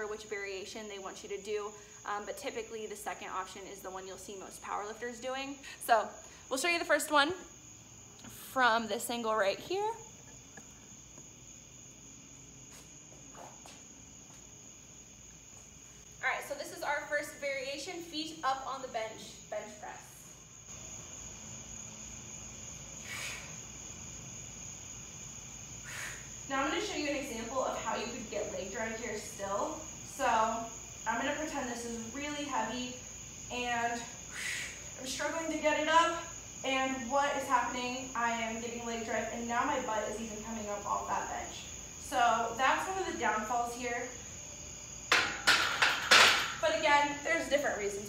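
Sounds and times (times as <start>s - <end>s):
barbell knocking on rack hooks: 45.1s - 46.6s.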